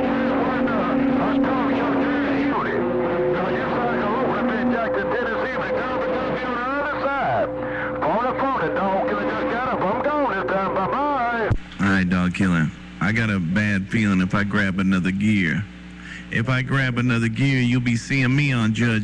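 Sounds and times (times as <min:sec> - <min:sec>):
whistling radio tones: 0:00.0 - 0:11.6
garbled radio voices: 0:00.0 - 0:19.0.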